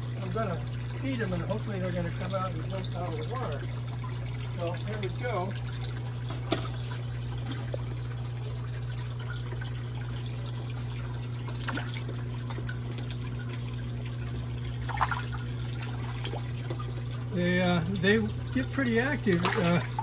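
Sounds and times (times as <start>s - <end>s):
water trickling into pond: 0.0s - 20.0s
fish splashing at surface: 5.8s - 8.6s, 11.3s - 17.1s, 19.2s - 20.0s.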